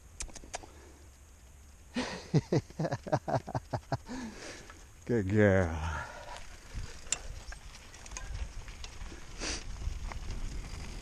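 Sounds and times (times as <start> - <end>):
bike ticking and rattling: 1.0 - 11.0
bike tyres rumbling on dirt: 1.5 - 11.0.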